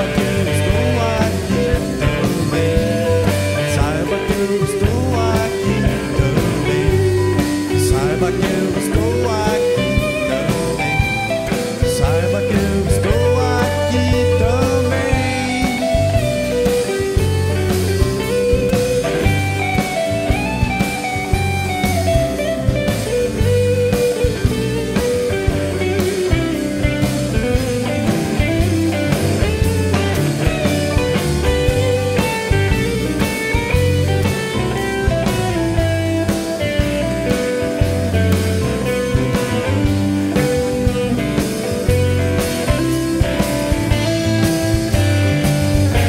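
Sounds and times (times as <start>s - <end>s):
man singing: 0.0s - 16.8s
bass: 0.0s - 46.0s
drum kit: 0.0s - 46.0s
electric guitar: 0.0s - 46.0s
gliding lead melody: 0.0s - 46.0s
keyboard: 0.0s - 46.0s
live band playing: 0.0s - 46.0s
strummed acoustic guitar: 0.0s - 46.0s.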